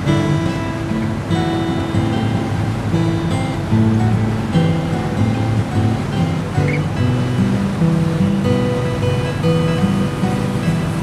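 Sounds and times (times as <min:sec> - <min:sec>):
sea water rushing: 0:00.0 - 0:11.0
strummed acoustic guitar: 0:00.0 - 0:11.0.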